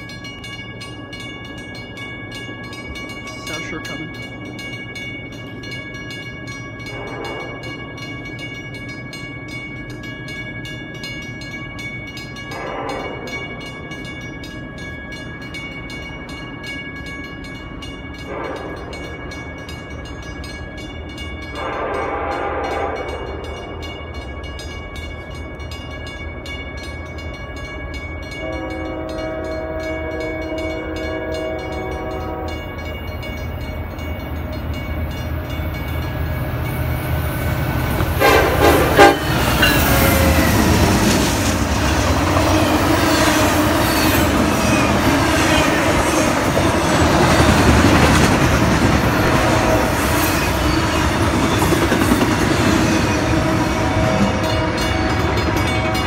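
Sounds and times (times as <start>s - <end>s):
train rumble: 0.0s - 56.0s
locomotive horn blasts: 6.9s - 7.7s, 12.5s - 13.4s, 21.6s - 23.3s, 28.4s - 32.7s, 38.0s - 40.6s
locomotive passing close: 31.6s - 56.0s.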